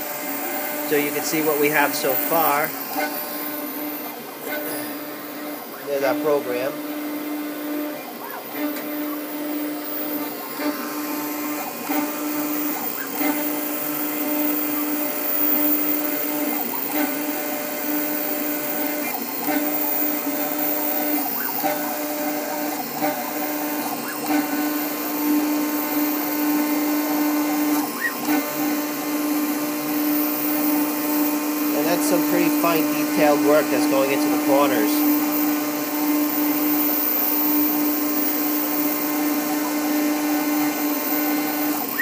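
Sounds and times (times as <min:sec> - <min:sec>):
engraving machine motor whine: 0:00.0 - 0:42.0.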